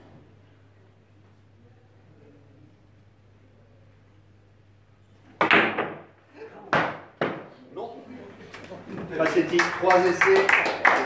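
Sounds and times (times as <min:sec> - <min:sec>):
billiard balls clacking: 0:05.3 - 0:07.6.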